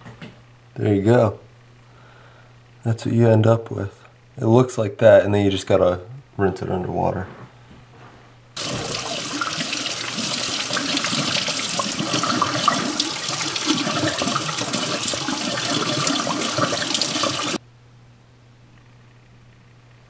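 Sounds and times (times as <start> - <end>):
faucet water splashing over hands: 8.6 - 17.6.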